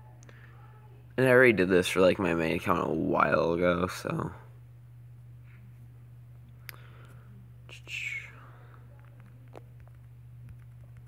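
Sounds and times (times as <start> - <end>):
faint low hum: 0.0 - 11.0
person breathy whisper: 7.7 - 9.0.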